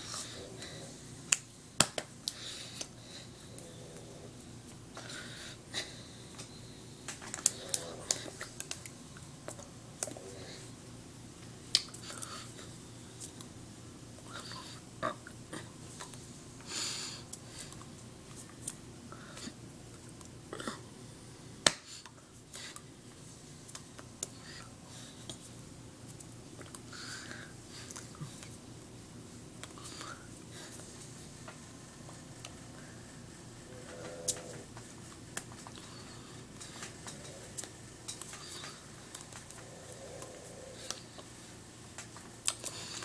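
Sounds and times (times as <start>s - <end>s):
hands slapping: 1.3s - 2.9s, 21.6s - 21.9s.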